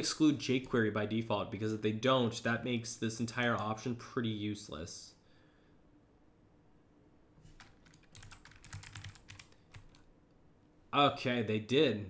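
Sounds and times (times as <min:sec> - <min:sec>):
computer keyboard typing: 0:07.5 - 0:10.1.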